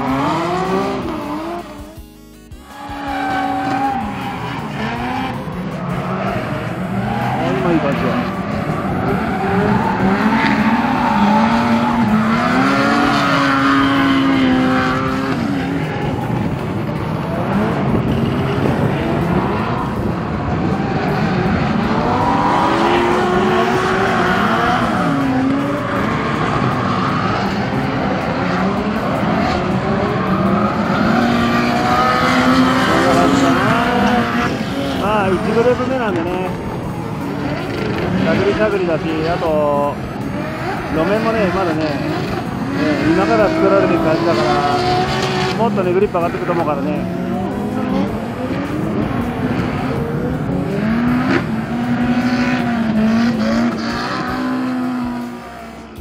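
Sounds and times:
high-revving car engines: 0:00.0 - 0:56.0
tyres squealing: 0:02.6 - 0:56.0.

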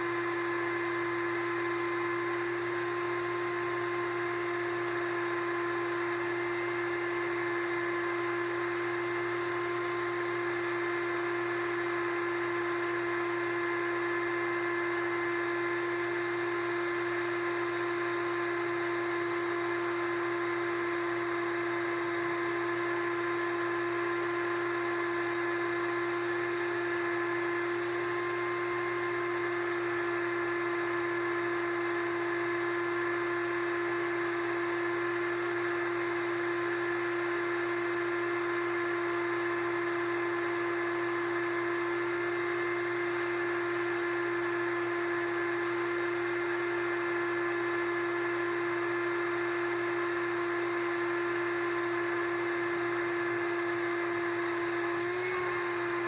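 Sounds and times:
shop vac whining: 0:00.0 - 0:56.0.

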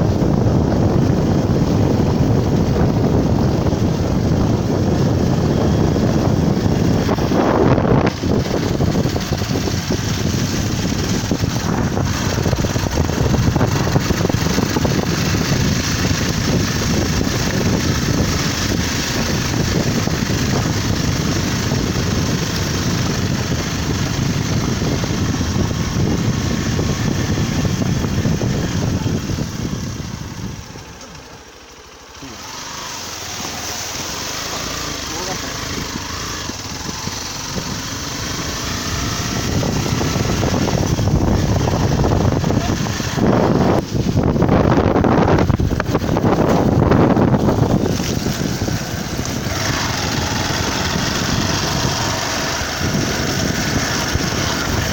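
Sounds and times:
wind rush on microphone: 0:00.0 - 0:31.5, 0:32.2 - 0:54.9
motorcycle engine running: 0:00.0 - 0:54.9.

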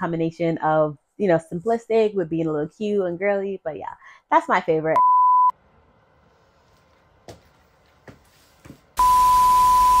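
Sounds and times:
high beep tone: 0:05.0 - 0:05.5, 0:09.0 - 0:10.0.

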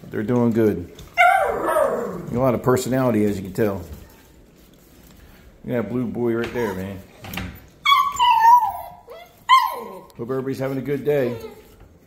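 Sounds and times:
puppy whining: 0:01.1 - 0:02.4, 0:06.6 - 0:12.0.

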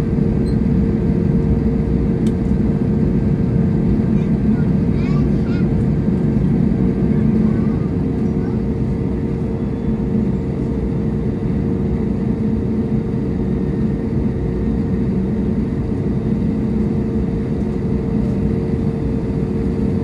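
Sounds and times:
jet engines idling: 0:00.0 - 0:20.0.

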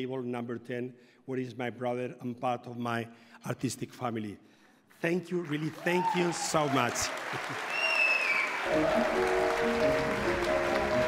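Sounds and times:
audience applauding: 0:05.4 - 0:11.0
high falling whistle: 0:07.7 - 0:08.7
music with sustained notes: 0:08.7 - 0:11.0.

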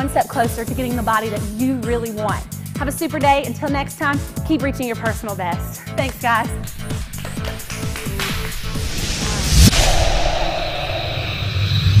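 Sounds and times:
low rumble: 0:06.5 - 0:12.0
heavy hit: 0:06.6 - 0:12.0
rising whoosh: 0:06.6 - 0:12.0.

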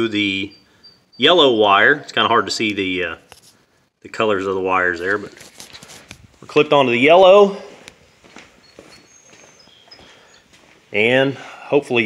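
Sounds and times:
thin high peeps: 0:00.0 - 0:02.5, 0:08.0 - 0:10.6
footsteps on concrete: 0:07.6 - 0:10.9.

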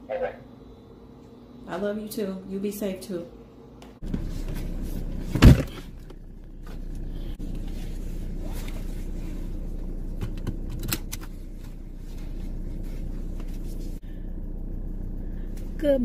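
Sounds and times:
car engine idling: 0:04.0 - 0:16.0.

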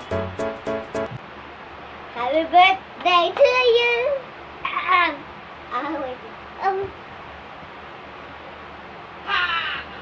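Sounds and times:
low background noise: 0:00.0 - 0:10.0
harsh caw-like cry: 0:09.2 - 0:10.0.

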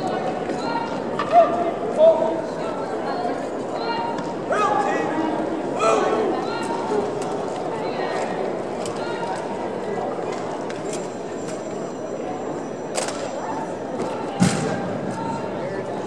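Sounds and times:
murmur of crowd voices: 0:00.0 - 0:16.0.

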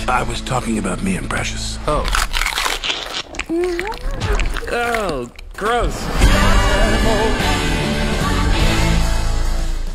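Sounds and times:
pony crunching a carrot: 0:01.9 - 0:05.8.

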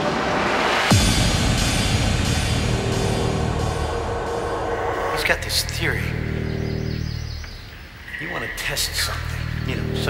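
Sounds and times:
low synth bass notes: 0:00.9 - 0:10.0
high chirping synth blips: 0:05.3 - 0:10.0.

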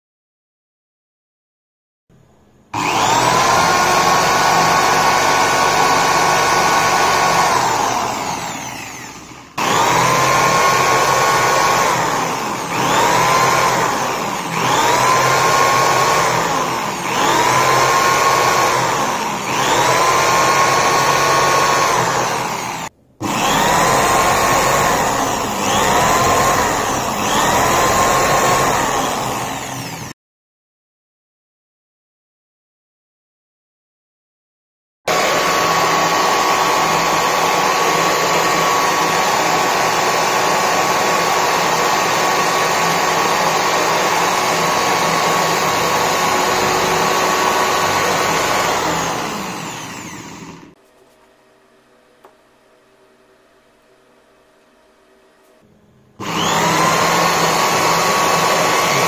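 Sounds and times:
electric drill motor whine: 0:02.7 - 0:30.2, 0:35.1 - 0:50.8, 0:56.2 - 0:59.0.

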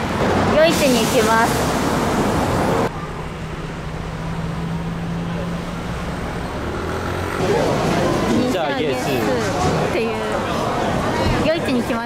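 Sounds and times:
loud rush of noise: 0:00.0 - 0:11.5
engines humming: 0:00.0 - 0:12.0
traffic noise: 0:00.0 - 0:12.0
voices: 0:02.8 - 0:12.0.

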